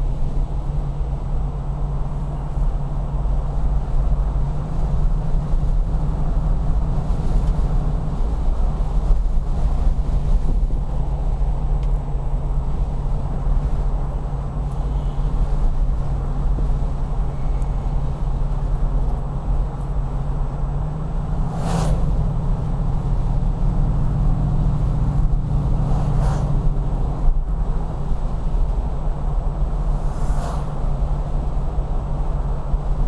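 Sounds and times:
car engine throbbing: 0:00.0 - 0:33.0
road and tyre noise: 0:00.0 - 0:33.0.

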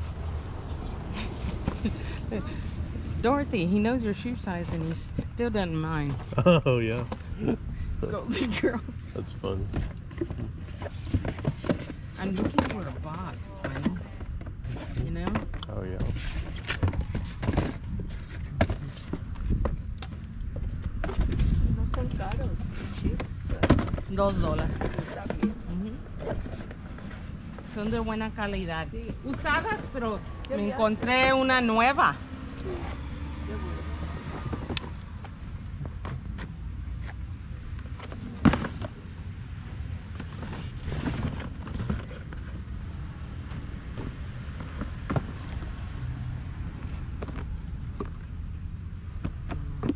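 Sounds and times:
wind rumbling on microphone: 0:00.0 - 0:31.5
wind on microphone: 0:16.0 - 0:27.8.

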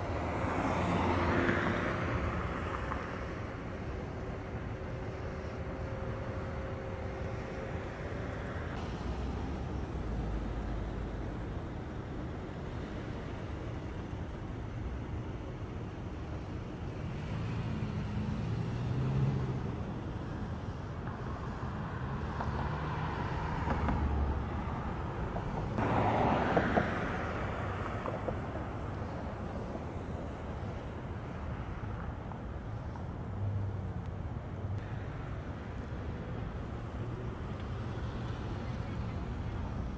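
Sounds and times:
cars driving past: 0:00.0 - 0:39.9.

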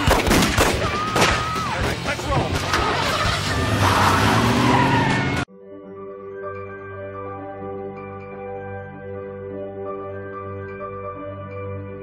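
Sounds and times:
people shouting: 0:00.0 - 0:02.0
tyre squeal: 0:02.6 - 0:05.5
soft music with held notes: 0:05.5 - 0:12.0.

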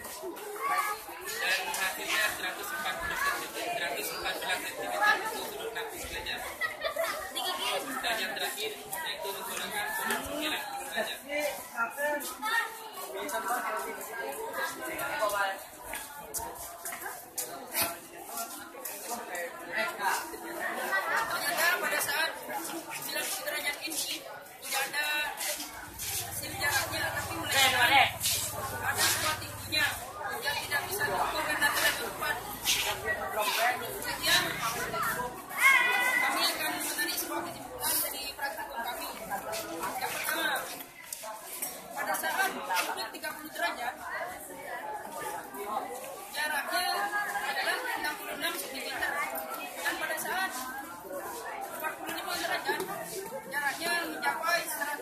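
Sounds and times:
indistinct chatter of voices: 0:00.0 - 0:55.0
young people talking and calling: 0:00.0 - 0:55.0.

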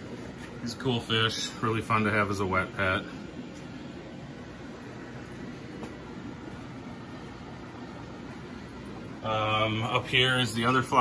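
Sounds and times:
aquarium filters and air pumps humming: 0:00.0 - 0:11.0.

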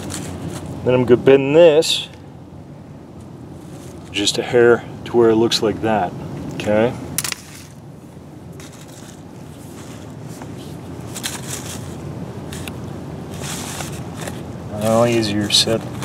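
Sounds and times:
low background rumble: 0:00.0 - 0:16.0
cable rustling over dry leaves: 0:08.6 - 0:10.4, 0:11.0 - 0:12.7.

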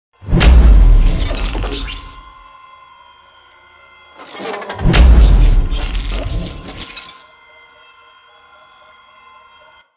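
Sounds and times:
faint ringing drone: 0:00.6 - 0:09.9
glassy shattering crash: 0:04.2 - 0:07.2.

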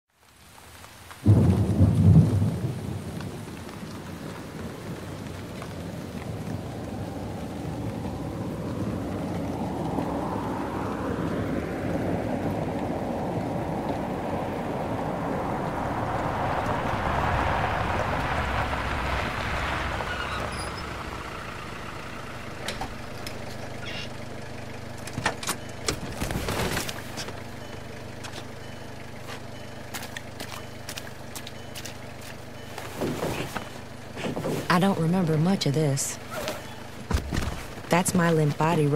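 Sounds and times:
rain: 0:00.1 - 0:38.9
thunderclap: 0:01.2 - 0:21.3.

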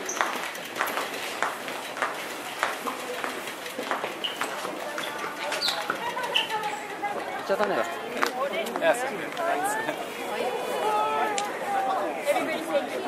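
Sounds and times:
voices murmuring: 0:02.3 - 0:13.0.

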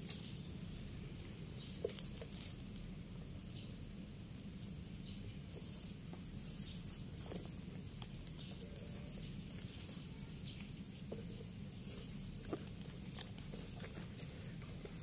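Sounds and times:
steady high-pitched hiss: 0:00.0 - 0:15.0.

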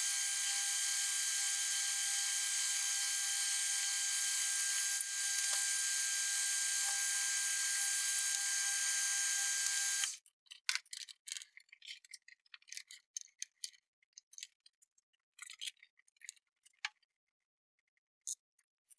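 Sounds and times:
metal lathe whirring and whining: 0:00.0 - 0:10.1
light clicks and rattles: 0:10.5 - 0:17.0.

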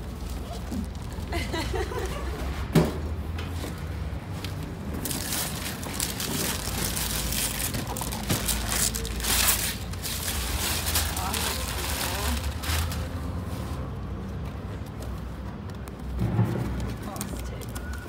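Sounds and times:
wrapping paper rustling and tearing: 0:05.0 - 0:13.7.

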